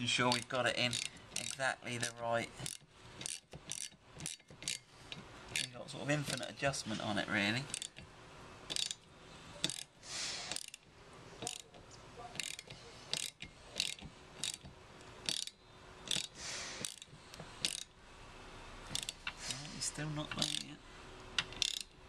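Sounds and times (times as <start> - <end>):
socket ratchet clicking: 0.3 - 6.5, 7.7 - 8.1, 8.7 - 18.0, 18.9 - 19.6, 20.3 - 20.7, 21.3 - 22.0.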